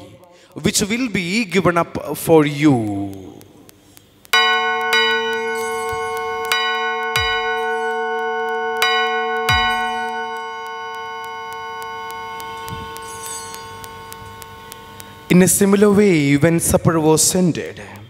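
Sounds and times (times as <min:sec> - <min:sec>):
altar bell ringing: 0:04.4 - 0:16.3.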